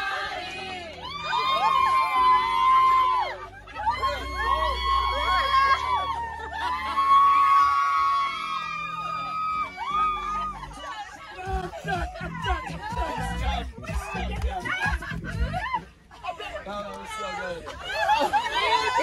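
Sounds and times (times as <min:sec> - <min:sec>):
people cheering and whooping: 0:00.0 - 0:19.0.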